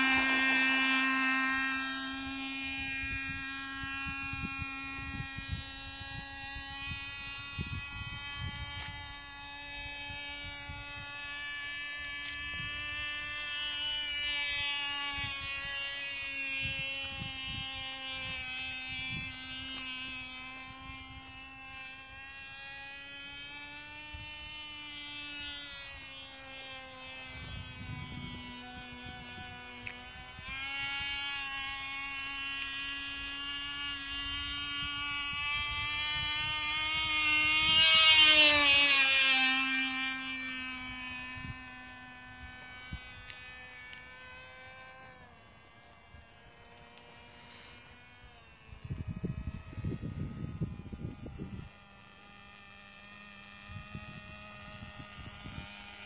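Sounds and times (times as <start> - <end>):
model airplane engine buzzing: 0.0 - 56.0.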